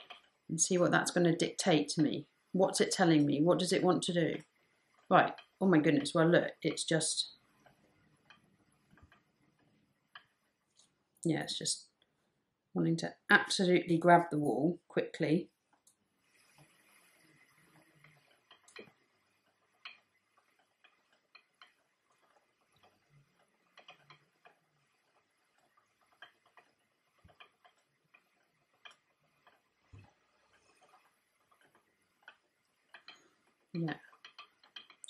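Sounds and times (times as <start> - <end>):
spinning wheel clicking: 17.8 - 35.0.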